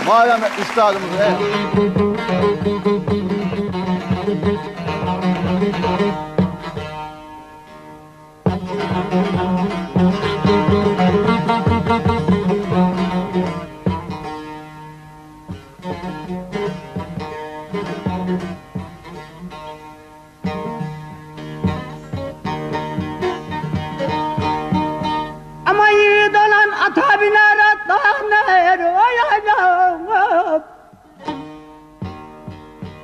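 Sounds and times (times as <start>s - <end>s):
plucked long-necked lute: 1.0s - 33.0s.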